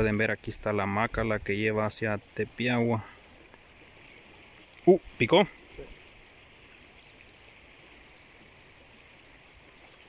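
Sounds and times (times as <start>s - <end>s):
flowing river: 0.0s - 10.0s.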